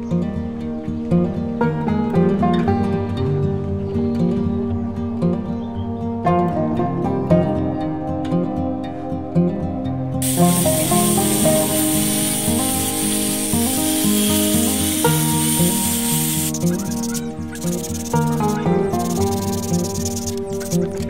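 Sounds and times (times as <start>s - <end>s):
background music: 0.0s - 21.0s
sanding disc hissing on wood: 10.2s - 20.9s.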